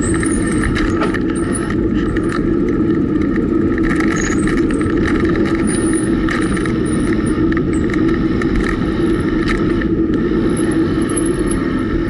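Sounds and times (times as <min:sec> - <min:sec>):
small rattling clicks: 0:00.0 - 0:11.6
bicycle tyres on asphalt: 0:00.0 - 0:12.0
wind on microphone: 0:00.0 - 0:12.0.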